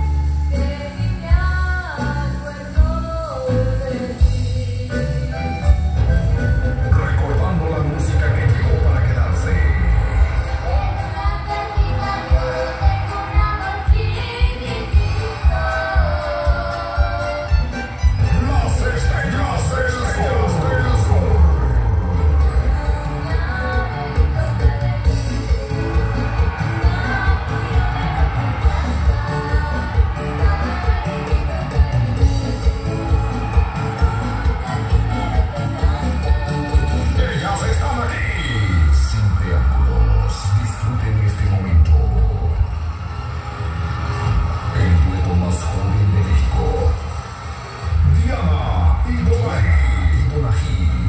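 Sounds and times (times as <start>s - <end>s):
live band music with heavy bass: 0.0s - 51.0s.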